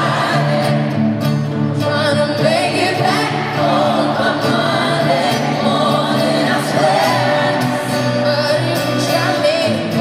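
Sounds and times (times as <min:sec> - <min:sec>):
woman singing into a microphone: 0:00.0 - 0:01.0, 0:01.6 - 0:10.0
voices singing together: 0:00.0 - 0:01.2, 0:01.8 - 0:10.0.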